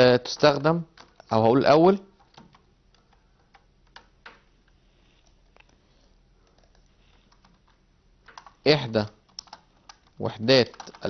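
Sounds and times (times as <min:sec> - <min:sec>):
keyboard key clicks: 0:06.6 - 0:11.0.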